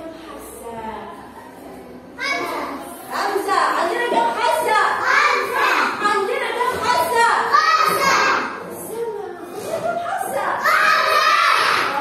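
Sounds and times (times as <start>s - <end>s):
young children's voices: 1.2s - 3.1s, 4.5s - 6.1s, 6.7s - 12.0s.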